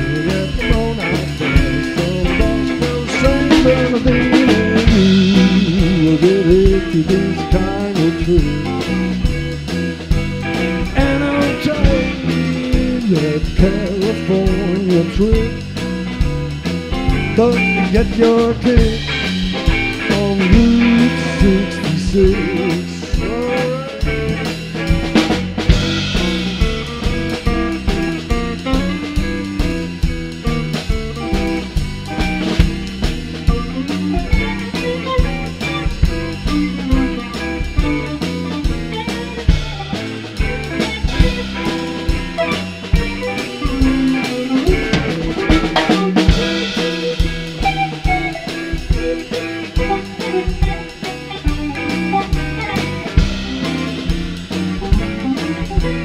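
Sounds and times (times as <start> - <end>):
drum kit steady beat: 0.0 - 56.0
electric bass: 0.0 - 56.0
electric guitars: 0.0 - 56.0.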